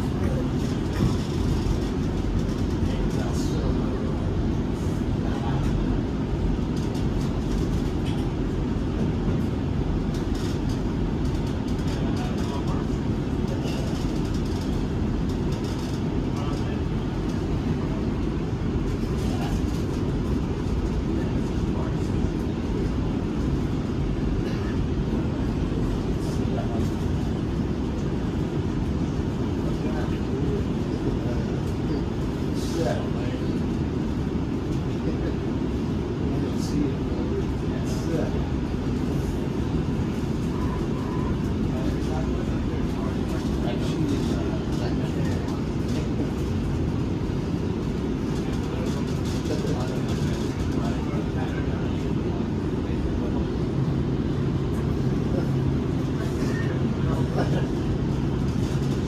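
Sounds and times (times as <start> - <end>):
train wheels rumbling on rails: 0.0 - 59.0.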